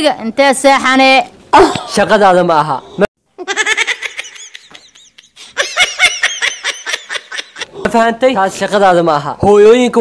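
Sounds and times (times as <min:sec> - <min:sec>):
woman laughing hard: 0:03.4 - 0:07.7.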